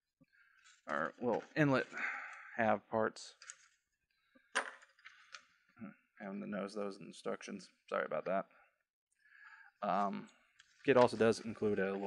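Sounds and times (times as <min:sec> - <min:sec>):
plastic parts clinking down: 0:04.5 - 0:05.4.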